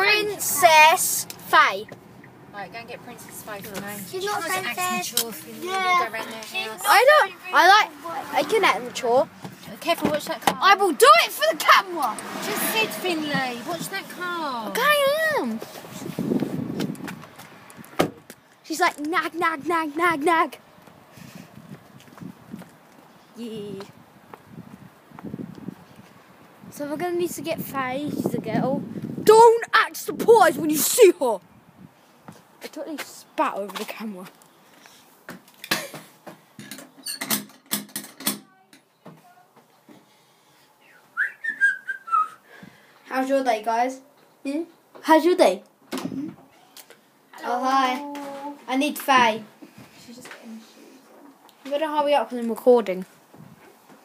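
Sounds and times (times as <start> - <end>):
phone microphone handling noise: 15.6 - 18.4
boy whistling: 40.9 - 42.5.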